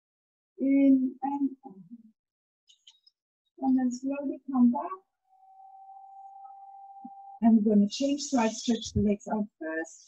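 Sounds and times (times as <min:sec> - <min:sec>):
faint high-pitched tone: 0:03.6 - 0:08.8.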